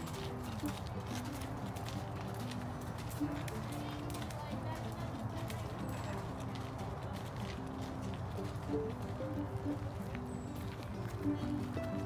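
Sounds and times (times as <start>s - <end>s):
hooves clopping on gravel: 0.0s - 12.0s.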